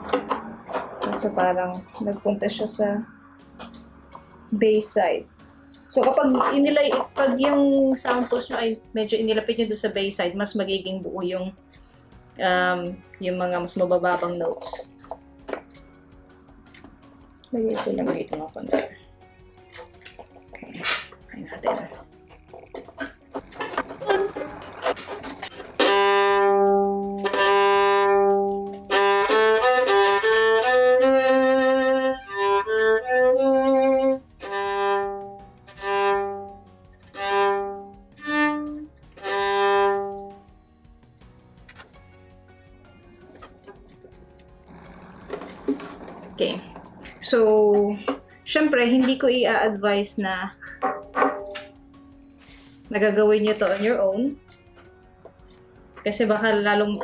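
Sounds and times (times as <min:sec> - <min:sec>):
violin bowed: 0:23.0 - 0:40.4.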